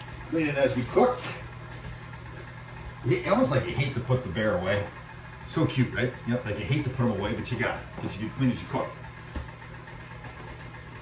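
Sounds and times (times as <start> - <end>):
kitchen appliance humming: 0.0 - 11.0.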